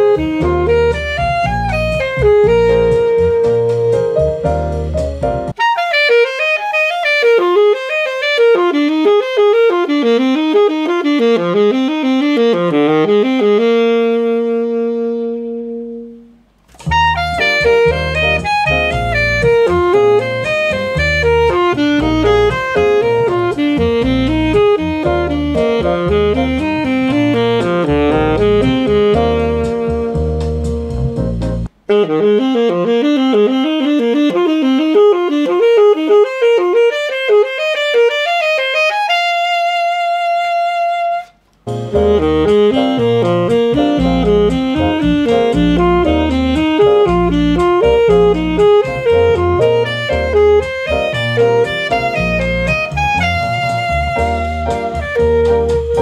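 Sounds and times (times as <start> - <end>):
backing track with bass line: 0.0 - 5.6, 6.9 - 38.6, 39.5 - 56.0
alto saxophone playing jazz: 0.0 - 56.0.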